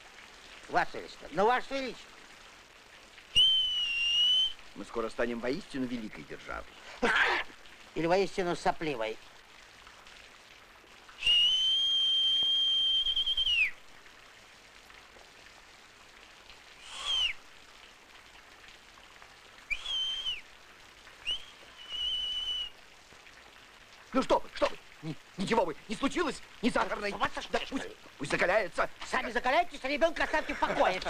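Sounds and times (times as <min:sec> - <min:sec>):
steady rain hiss: 0:00.0 - 0:31.0
person whistling high notes: 0:03.4 - 0:04.6, 0:11.2 - 0:13.7, 0:16.8 - 0:17.4, 0:19.7 - 0:20.4, 0:21.2 - 0:22.7.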